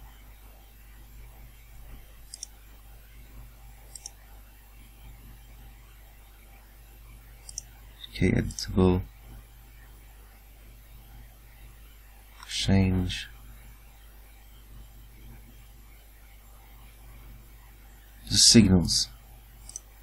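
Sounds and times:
computer mouse clicking: 0:02.2 - 0:02.6, 0:03.9 - 0:04.2, 0:07.4 - 0:08.7, 0:19.6 - 0:19.9.

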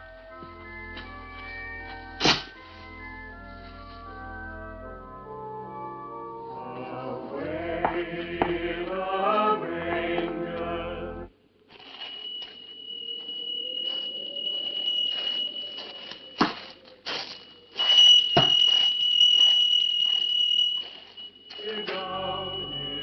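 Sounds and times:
choir carols on radio: 0:06.6 - 0:11.3, 0:12.8 - 0:17.8, 0:21.1 - 0:23.0
steady high-pitched tone: 0:09.6 - 0:23.0.

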